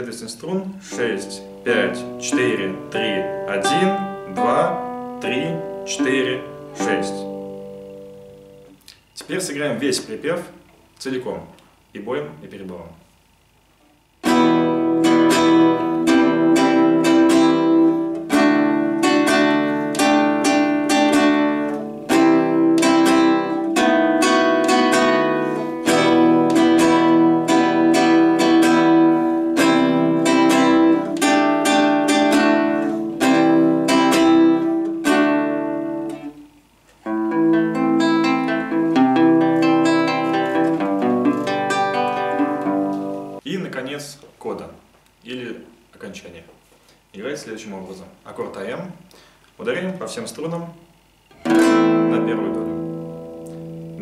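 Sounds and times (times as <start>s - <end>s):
nylon-string guitar strumming: 0.6s - 10.3s, 14.2s - 43.4s, 51.3s - 54.0s
fingerpicked guitar arpeggio: 0.8s - 8.8s, 14.2s - 43.4s, 51.4s - 54.0s.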